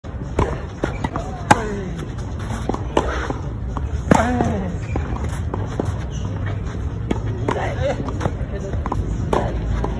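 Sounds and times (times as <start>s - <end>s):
tennis ball struck by rackets: 0.2s - 6.2s, 7.0s - 9.9s.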